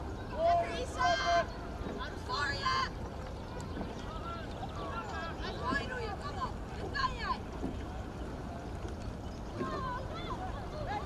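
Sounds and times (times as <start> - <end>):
distant shouting voices: 0.0 - 8.4.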